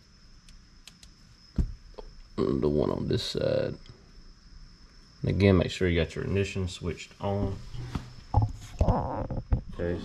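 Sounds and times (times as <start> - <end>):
dull thump: 1.5 - 1.9.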